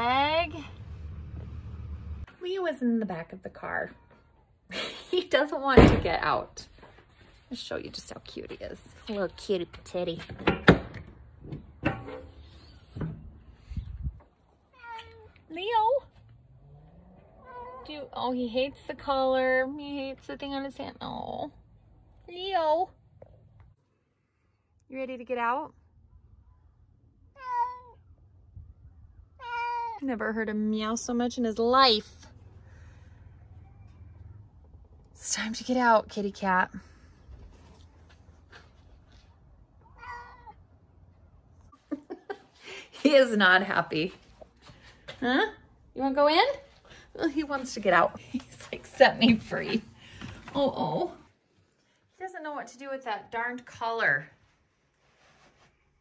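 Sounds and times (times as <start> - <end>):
cat meowing: 17.4 - 17.9, 27.3 - 28.0, 29.4 - 30.0, 39.8 - 40.6.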